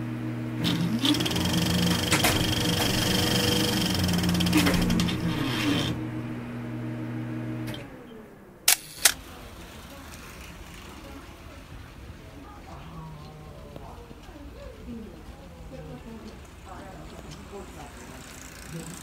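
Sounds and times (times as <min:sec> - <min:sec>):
low droning sliding chord: 0:01.8 - 0:08.7
sharp clicks: 0:08.7 - 0:09.3.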